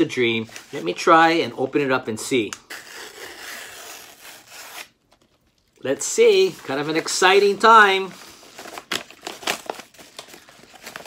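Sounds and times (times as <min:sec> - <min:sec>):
envelope paper tearing: 0:02.6 - 0:05.0.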